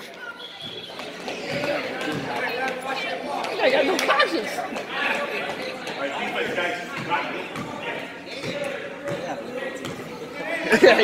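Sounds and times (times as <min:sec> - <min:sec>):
voices chattering in gymnasium: 0:00.0 - 0:11.0.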